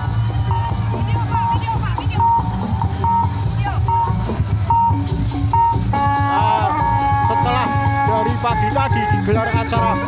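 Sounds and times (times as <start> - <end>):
loud music: 0.0 - 10.0
short electronic beeps: 0.3 - 6.6.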